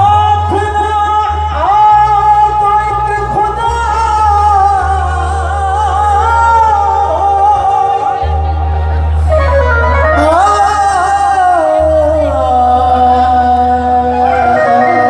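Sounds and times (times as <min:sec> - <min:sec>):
instrumental accompaniment with bass: 0:00.0 - 0:15.0
man singing into microphone: 0:00.0 - 0:15.0.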